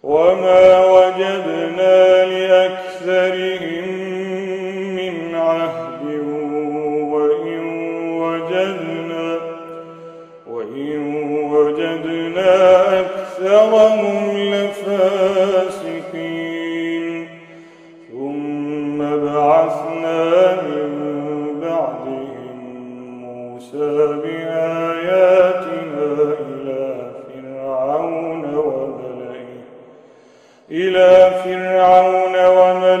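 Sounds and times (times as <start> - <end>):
man reciting melodically: 0.0 - 33.0.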